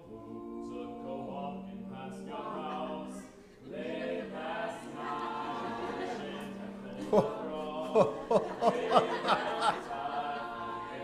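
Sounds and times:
a cappella vocal quartet singing: 0.0s - 11.0s.

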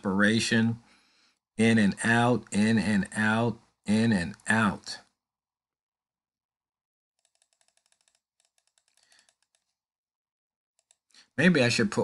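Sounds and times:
computer keyboard clicking: 7.2s - 9.7s, 10.8s - 11.0s.

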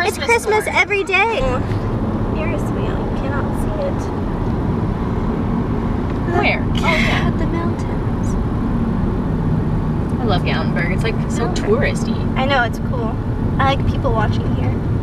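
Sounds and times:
car cabin road rumble: 0.0s - 15.0s.

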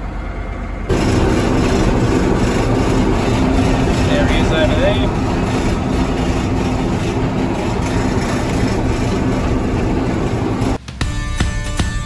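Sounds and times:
tractor diesel engine running: 0.0s - 12.0s.

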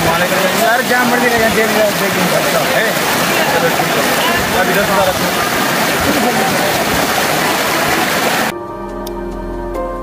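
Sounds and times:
stream rushing over rocks: 0.0s - 8.5s
soft music with long notes: 8.5s - 10.0s.

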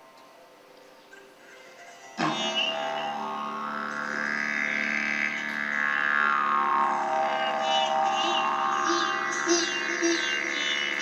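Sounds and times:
sitar drone: 0.0s - 11.0s
plucked sitar notes: 0.9s - 11.0s
brass horn long bending note: 2.2s - 11.0s.

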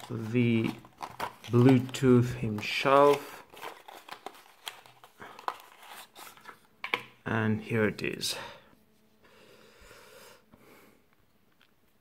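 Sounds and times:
cardboard rustling and scraping: 0.0s - 6.7s.

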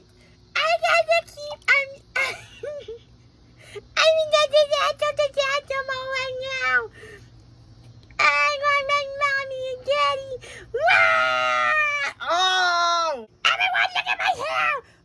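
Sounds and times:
high-pitched voice wailing and screaming: 8.2s - 14.8s.

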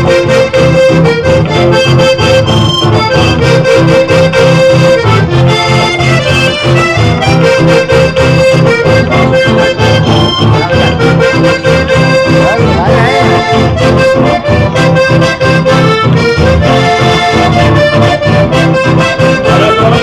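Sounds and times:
accordion melody: 0.0s - 20.0s
low rhythmic pulse: 0.0s - 20.0s
strummed acoustic guitars: 0.0s - 20.0s.

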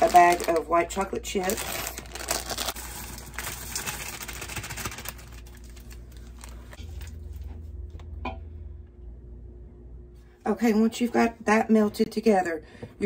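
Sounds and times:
chocolate chips pouring into metal pot: 1.4s - 5.6s.

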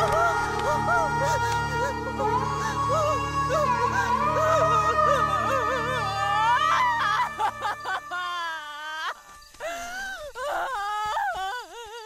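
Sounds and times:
woman wailing in grief: 0.0s - 12.0s.

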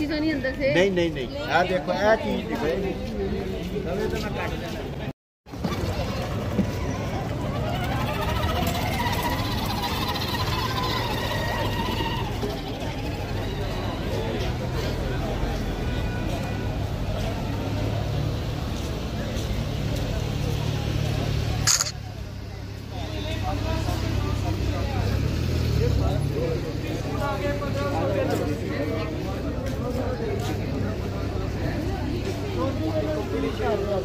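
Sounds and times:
people talking: 0.0s - 34.0s
vehicle engine rumbling: 2.8s - 34.0s.

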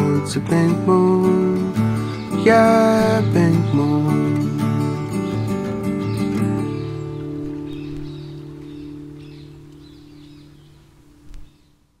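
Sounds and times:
acoustic guitar strumming: 0.0s - 11.7s.

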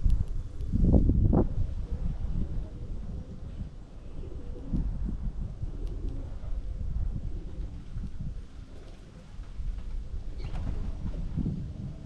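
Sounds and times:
steady low rumble: 0.0s - 12.0s
dove cooing: 1.7s - 7.9s.

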